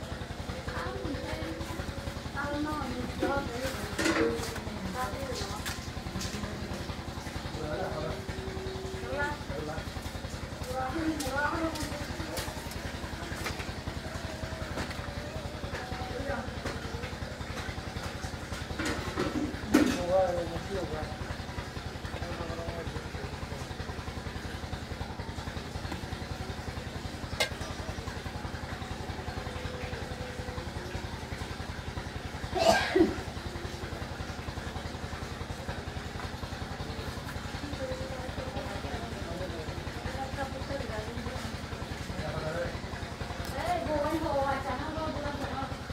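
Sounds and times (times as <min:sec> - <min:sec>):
small engine running: 0:00.0 - 0:45.9.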